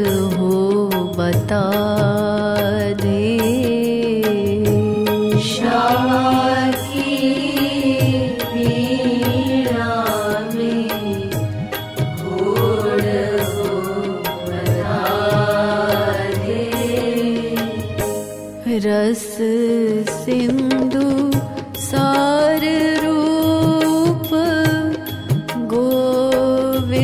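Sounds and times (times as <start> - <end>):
devotional music gliding melody: 0.0 - 27.0.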